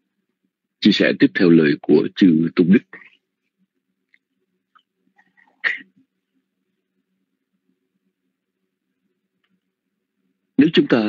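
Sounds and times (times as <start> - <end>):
faint small sounds: 0.0 - 11.0
person sneezing: 5.6 - 5.9.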